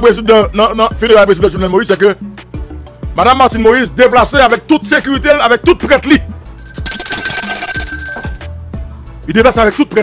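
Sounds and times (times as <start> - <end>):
background music with low beat: 0.0 - 10.0
high ringing alarm tone: 6.6 - 8.6.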